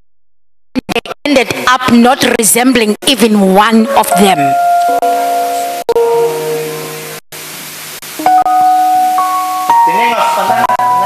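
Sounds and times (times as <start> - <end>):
keyboard chords: 3.8 - 7.5, 8.2 - 11.0
steady hiss: 4.0 - 11.0.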